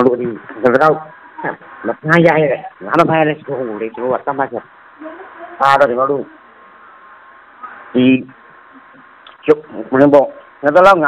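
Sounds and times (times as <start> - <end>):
man speaking: 0.0 - 4.7, 5.6 - 6.4, 7.9 - 11.0.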